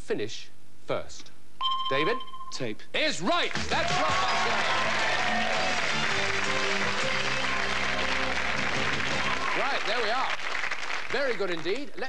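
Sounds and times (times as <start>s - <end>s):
studio audience applauding: 3.3s - 12.0s
game show music sting: 3.5s - 9.9s.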